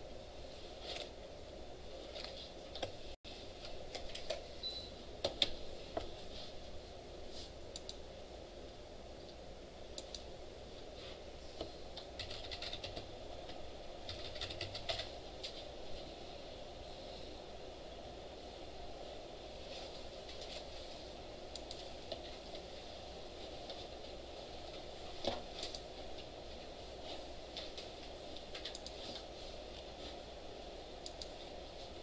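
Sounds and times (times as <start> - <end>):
low room hum: 0.0 - 32.0
computer keyboard typing: 11.9 - 15.6, 28.5 - 29.0.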